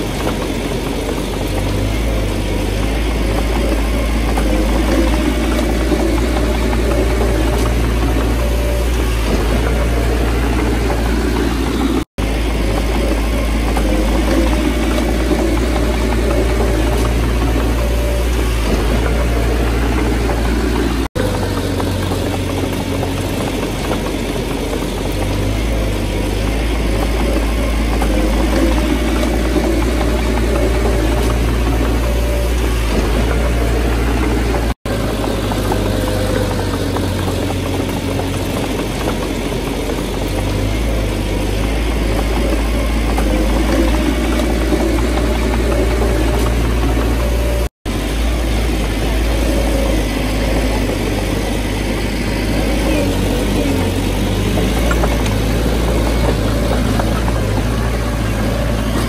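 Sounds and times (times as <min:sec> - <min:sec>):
bulldozer diesel engine running: 0:00.0 - 0:59.0.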